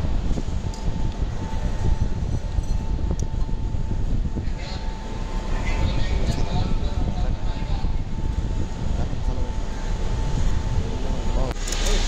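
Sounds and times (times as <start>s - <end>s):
steady faint hum: 0.0s - 12.0s.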